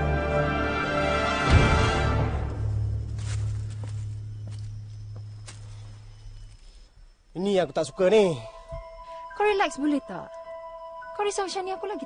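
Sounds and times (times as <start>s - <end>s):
footsteps crunching on forest floor: 2.4s - 6.8s.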